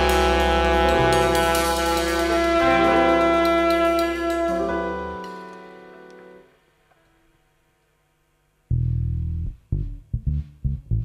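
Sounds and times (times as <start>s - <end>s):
electric bass guitar riff: 0.0s - 5.3s, 8.7s - 11.0s.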